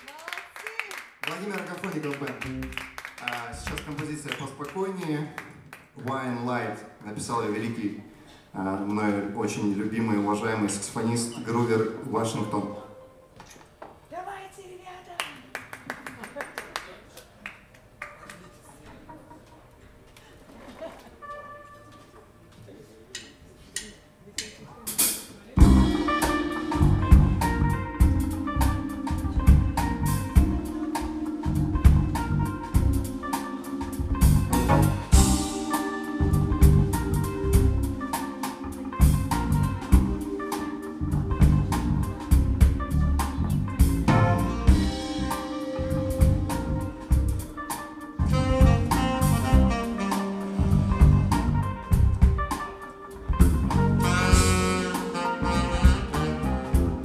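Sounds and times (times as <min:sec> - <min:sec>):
jazz band playing: 0:02.1 - 0:04.2, 0:08.8 - 0:13.3, 0:21.1 - 0:22.4, 0:24.9 - 0:57.0
drum kit: 0:23.2 - 0:57.0
electric bass: 0:25.6 - 0:52.6, 0:53.2 - 0:57.0.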